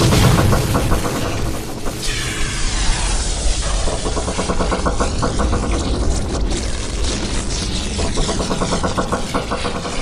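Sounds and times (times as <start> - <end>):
rapid pulsing tone: 0.0 - 10.0.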